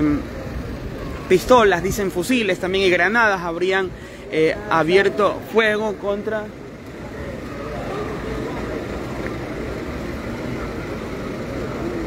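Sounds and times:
faint voices of people talking: 0:00.0 - 0:12.0
low rumble of street noise: 0:00.0 - 0:12.0.

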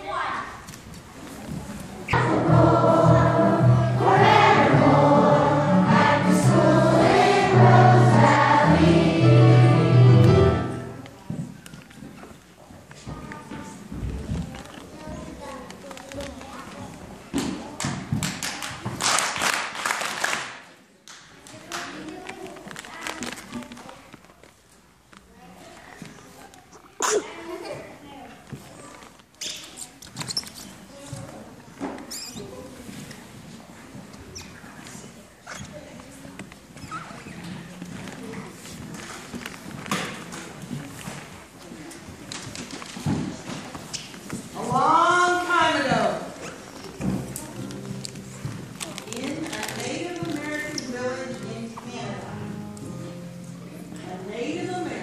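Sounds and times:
murmur of audience: 0:00.0 - 0:19.8
children singing together: 0:02.2 - 0:10.9
low musical accompaniment: 0:02.2 - 0:11.2, 0:47.5 - 0:55.0
sneeze: 0:26.9 - 0:27.7.

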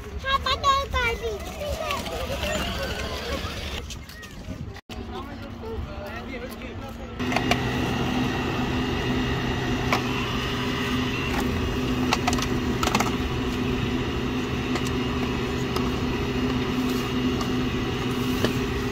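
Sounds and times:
drinks machine humming: 0:02.0 - 0:03.9, 0:05.2 - 0:18.9.

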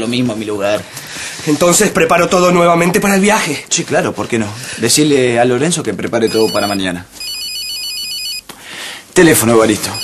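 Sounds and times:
electronic telephone ringing: 0:06.2 - 0:08.5, 0:09.8 - 0:10.0.

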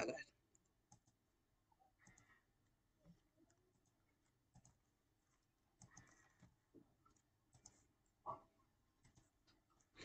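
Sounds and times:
computer mouse clicks: 0:00.4 - 0:01.2, 0:02.0 - 0:02.4, 0:03.0 - 0:08.4, 0:09.0 - 0:09.9.

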